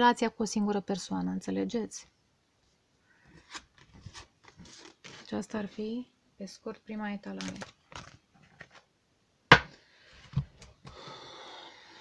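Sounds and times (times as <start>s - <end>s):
cards rustling while shuffled: 3.4s - 5.7s, 7.3s - 8.9s.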